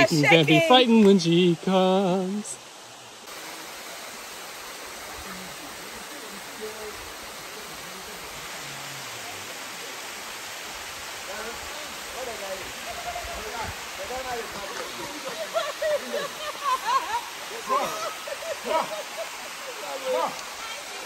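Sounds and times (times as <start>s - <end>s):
waterfall rushing: 0.0s - 21.0s.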